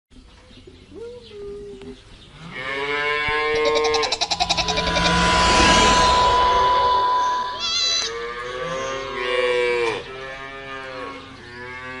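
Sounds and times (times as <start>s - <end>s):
rushing noise: 4.0s - 8.6s
steady high tone: 4.0s - 9.0s.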